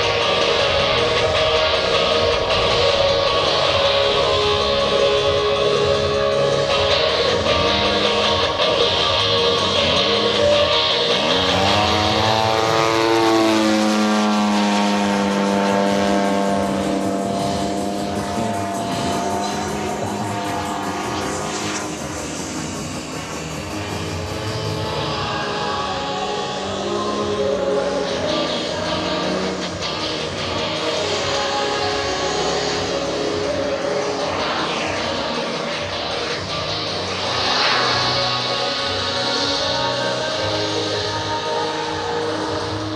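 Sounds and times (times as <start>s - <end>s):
model aircraft engine droning: 0.0s - 42.9s
music: 0.0s - 42.9s.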